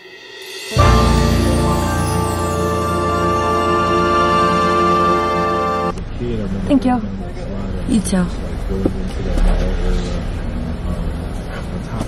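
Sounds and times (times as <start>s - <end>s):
car engine and road noise: 0.8s - 12.0s.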